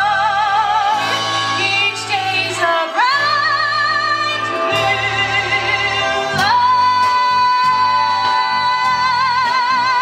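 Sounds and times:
instrumental accompaniment: 0.0 - 10.0
woman singing with vibrato: 0.0 - 10.0.

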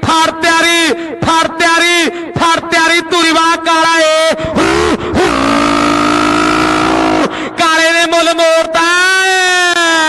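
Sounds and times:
man shouting long held note: 4.6 - 7.4.

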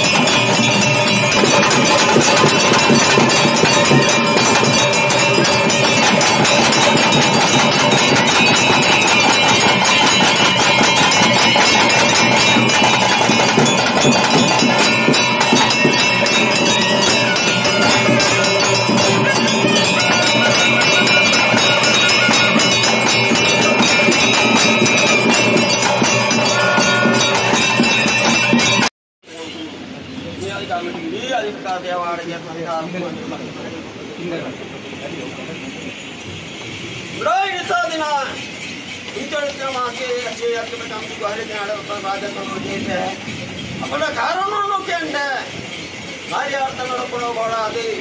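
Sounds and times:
rapid drumming: 0.0 - 28.9
bells ringing: 0.0 - 48.0.

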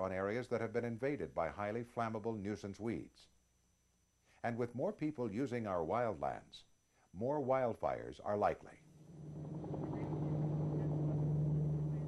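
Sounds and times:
helicopter engine and rotor: 9.0 - 12.0.

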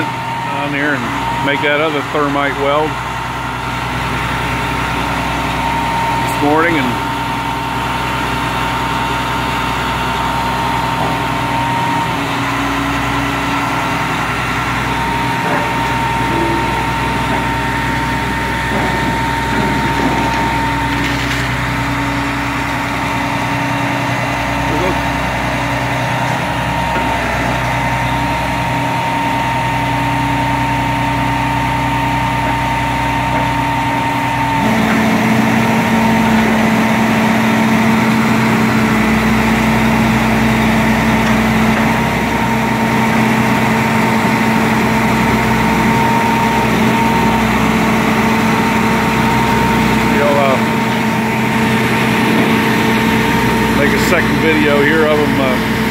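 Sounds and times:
truck engines humming and whining: 0.0 - 55.9.

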